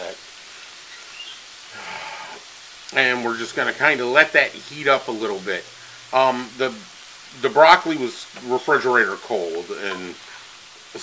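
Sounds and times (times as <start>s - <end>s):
food sizzling in a frying pan: 0.0s - 11.0s.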